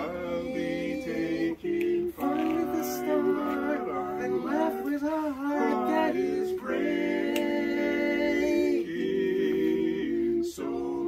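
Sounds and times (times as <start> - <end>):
barbershop quartet singing a cappella: 0.0 - 11.0.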